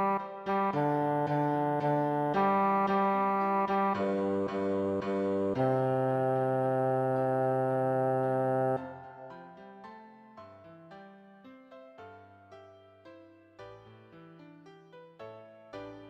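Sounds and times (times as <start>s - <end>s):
piano accompaniment: 0.0s - 16.0s.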